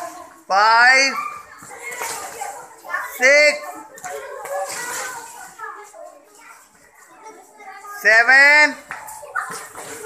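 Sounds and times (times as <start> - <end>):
children talking and calling: 0.0 - 10.0.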